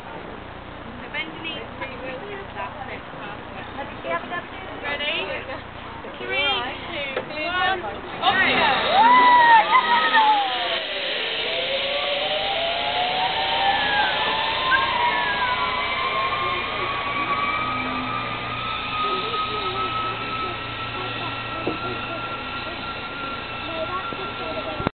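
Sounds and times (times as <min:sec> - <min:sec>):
zip-line pulleys whining on cable: 0:06.2 - 0:24.9
people screaming: 0:08.2 - 0:24.4.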